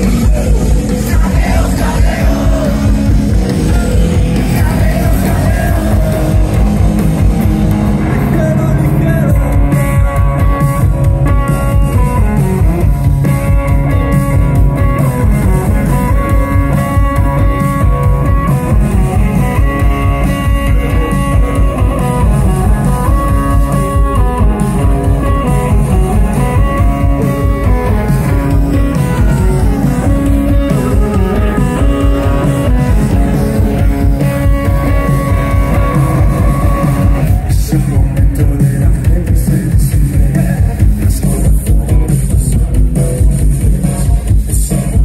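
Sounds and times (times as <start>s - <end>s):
electric guitar held notes: 0.0s - 38.7s
rock band playing live: 0.0s - 45.0s.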